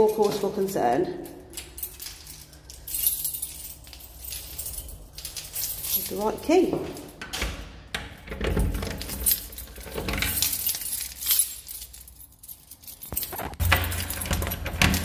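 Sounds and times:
keys jangling: 0.0s - 7.5s, 8.4s - 15.0s.

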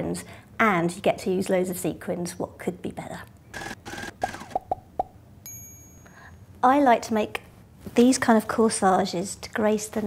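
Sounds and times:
bright high ding: 5.4s - 6.4s.

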